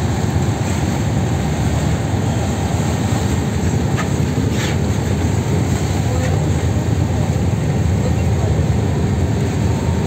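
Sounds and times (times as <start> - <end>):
choppy water rushing along hull: 0.0 - 10.0
faint splashes: 0.0 - 10.0.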